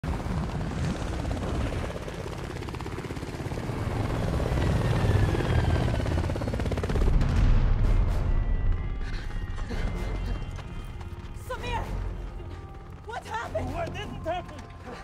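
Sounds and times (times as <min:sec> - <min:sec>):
helicopter rotors chopping: 0:00.0 - 0:15.0.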